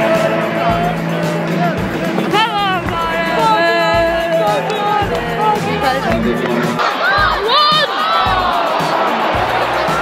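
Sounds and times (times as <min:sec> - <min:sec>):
music with singing over loudspeakers: 0:00.0 - 0:10.0
stadium crowd: 0:00.0 - 0:10.0.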